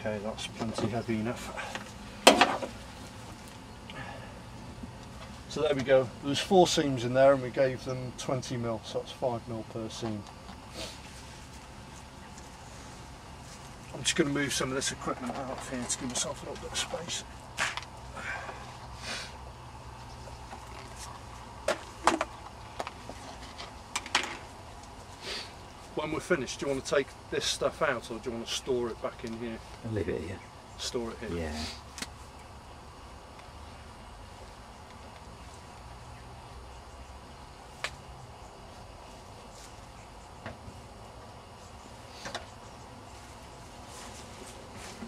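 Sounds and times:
low outdoor rumble: 0:00.0 - 0:45.0
low steady background noise: 0:00.0 - 0:45.0.

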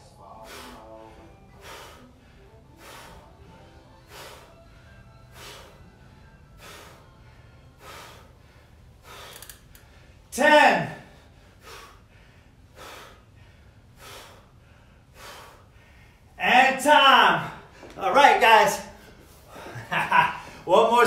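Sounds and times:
man's sharp exertion breaths: 0:00.2 - 0:16.4.

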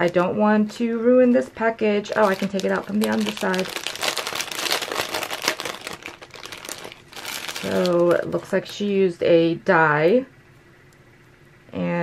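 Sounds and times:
plastic bag crinkling: 0:01.8 - 0:08.9.

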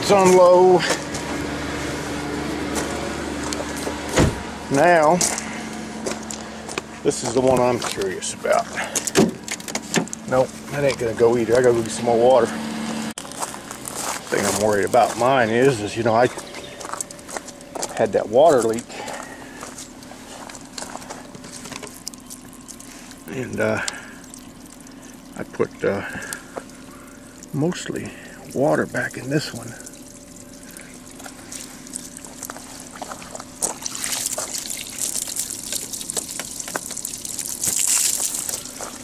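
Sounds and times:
car heater blower rushing air: 0:00.0 - 0:13.3
car engine idling: 0:00.0 - 0:39.0
steady low hum: 0:00.0 - 0:39.0
footsteps crunching on ice: 0:05.1 - 0:12.1, 0:12.8 - 0:25.3, 0:29.5 - 0:39.0.

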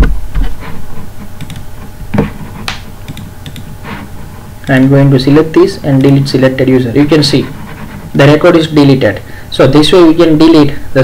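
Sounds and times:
keyboard and mouse clicks: 0:01.4 - 0:01.7, 0:02.7 - 0:03.7.

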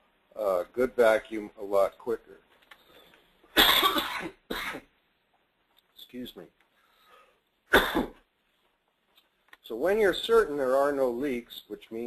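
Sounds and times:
man coughing: 0:03.6 - 0:04.9, 0:07.7 - 0:08.2.

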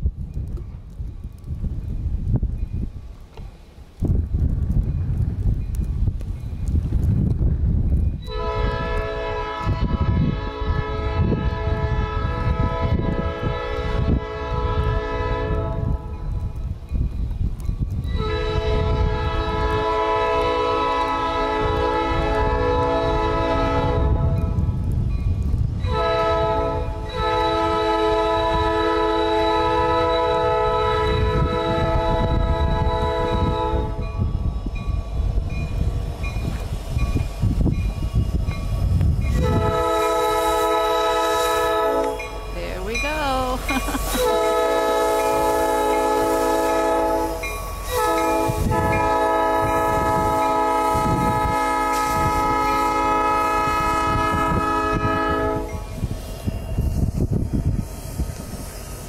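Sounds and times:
locomotive air horn blasts: 0:08.2 - 0:16.1, 0:18.2 - 0:24.5, 0:25.9 - 0:34.1, 0:39.3 - 0:42.4, 0:43.6 - 0:55.8.

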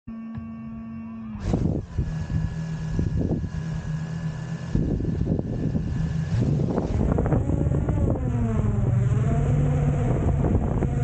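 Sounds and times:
drone motors humming: 0:00.1 - 0:11.0
high whine: 0:00.1 - 0:11.0
rushing propeller wash: 0:01.4 - 0:11.0.

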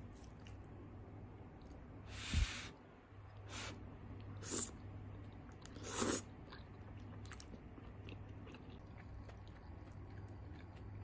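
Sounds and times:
soft chewing with clicks: 0:00.1 - 0:00.8, 0:04.1 - 0:11.0.

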